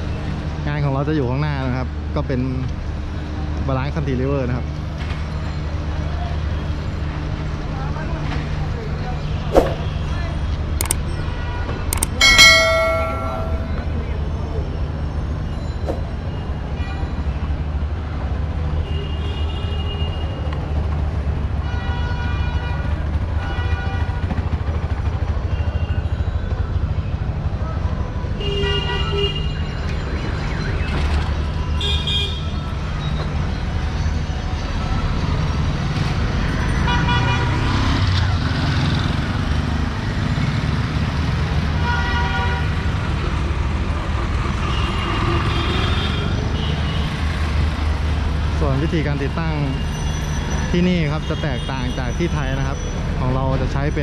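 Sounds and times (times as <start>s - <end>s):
low rumble of engines: 0.0s - 54.0s.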